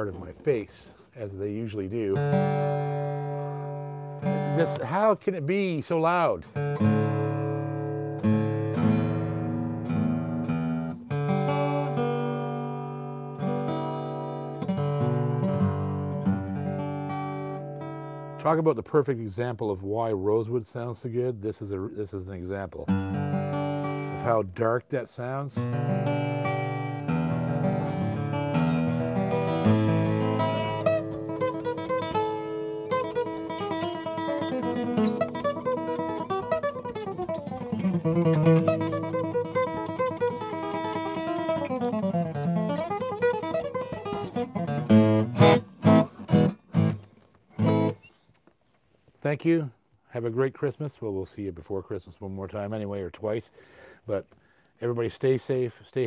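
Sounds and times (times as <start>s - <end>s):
acoustic guitar chord ringing: 2.2s - 5.1s, 6.4s - 18.4s, 23.0s - 24.4s, 25.6s - 48.0s.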